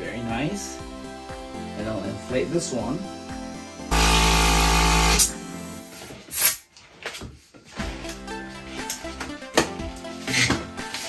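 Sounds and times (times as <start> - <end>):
electric balloon pump running: 3.9 - 5.4.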